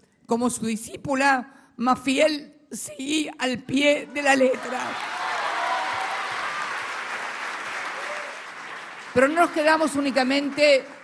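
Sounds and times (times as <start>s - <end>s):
audience applauding: 4.6s - 11.0s.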